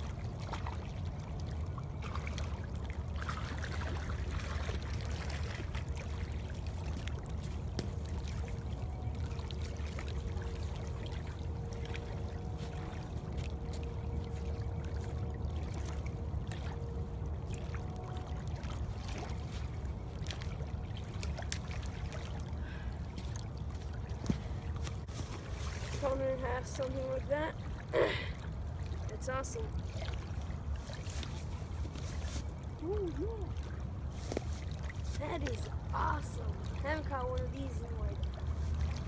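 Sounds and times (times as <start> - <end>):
faint steady hum: 0.0 - 39.0
water lapping at bank: 0.0 - 39.0.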